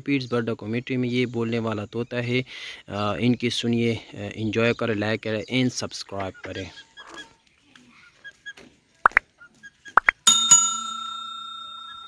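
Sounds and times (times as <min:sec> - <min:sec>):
bell-like notification ding: 0:10.3 - 0:12.0.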